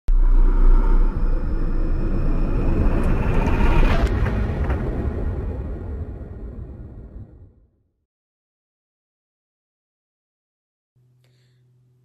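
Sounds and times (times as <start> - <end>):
faint tone rising in pitch: 0.1 - 4.2
deep rumble: 0.1 - 7.8.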